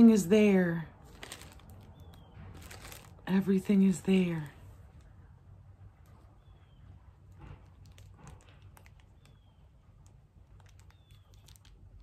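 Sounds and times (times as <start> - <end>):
low steady hum: 0.0 - 12.0
plastic bag rustling: 1.0 - 3.9, 7.3 - 12.0.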